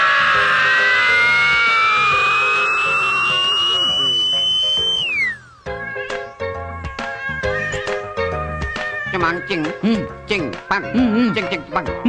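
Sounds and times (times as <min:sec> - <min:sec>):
rising electronic whine: 0:02.0 - 0:05.7.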